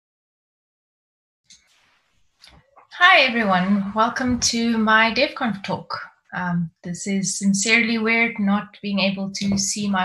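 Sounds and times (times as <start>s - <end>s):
woman speaking: 2.9s - 10.0s.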